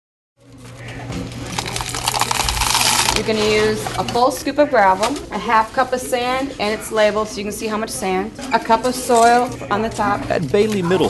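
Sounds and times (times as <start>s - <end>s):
gravel pouring into a cup: 1.5s - 3.2s.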